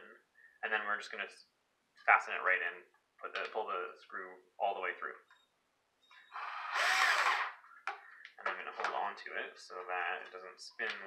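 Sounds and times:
cordless drill driving a screw into wood: 6.2 - 7.6.

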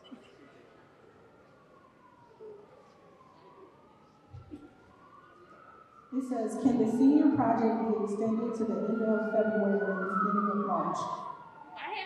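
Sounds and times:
faint wailing siren: 0.0 - 12.0.

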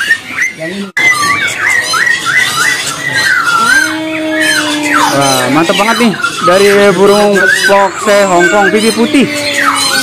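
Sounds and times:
bird chirping loudly: 0.0 - 10.0.

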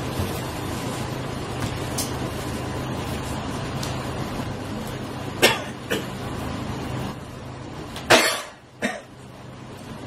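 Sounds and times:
low room hum: 0.0 - 10.0
person coughing: 5.4 - 6.2, 8.1 - 9.1.

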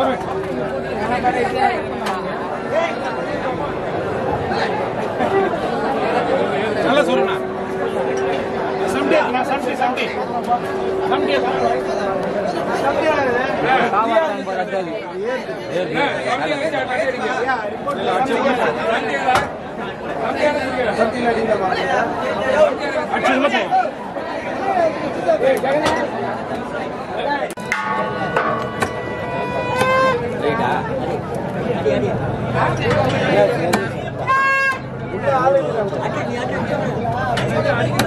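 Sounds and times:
held high-pitched note: 6.1 - 13.9, 27.6 - 31.1
sharp knocks: 27.6 - 30.2.

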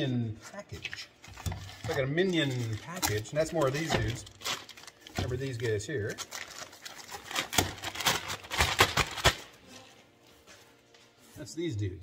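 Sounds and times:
plastic bag crinkling: 0.7 - 9.8.

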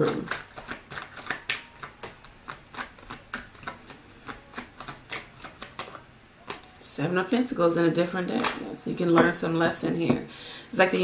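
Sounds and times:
cards being shuffled by hand: 0.0 - 6.7.

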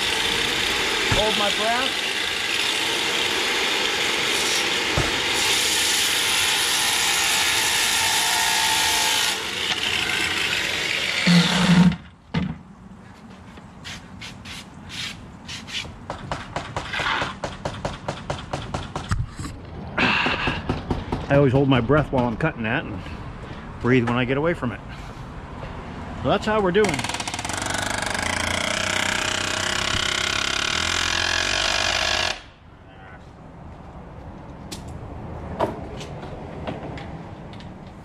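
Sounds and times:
circular saw cutting wood: 0.0 - 12.0, 26.8 - 32.5.

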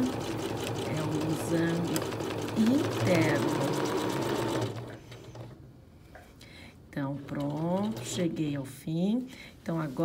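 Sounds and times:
sewing machine stitching: 0.0 - 5.5.

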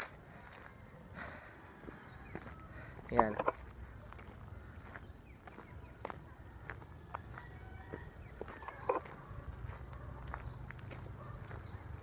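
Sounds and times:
footsteps on gravel: 0.0 - 0.9, 1.8 - 12.0.

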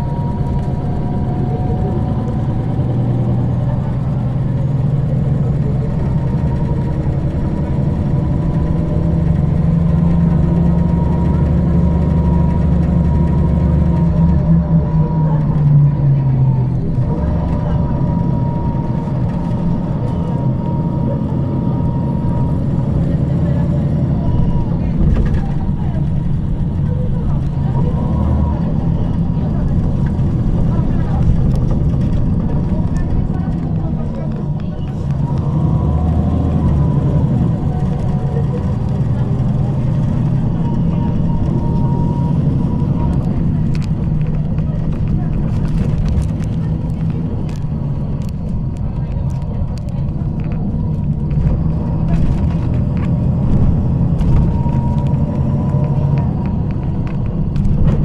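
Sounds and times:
bus engine droning: 0.0 - 58.0
passenger voices: 0.0 - 58.0.

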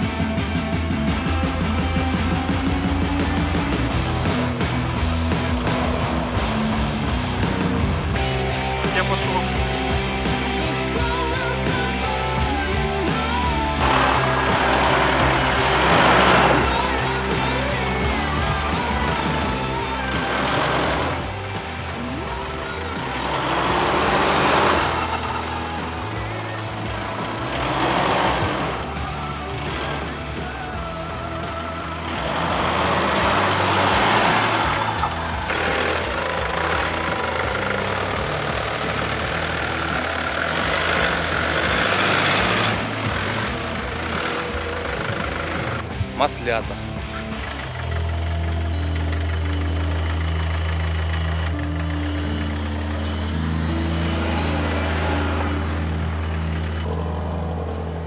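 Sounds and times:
background music: 0.0 - 58.0
off-road vehicle engine surging: 0.0 - 58.0.

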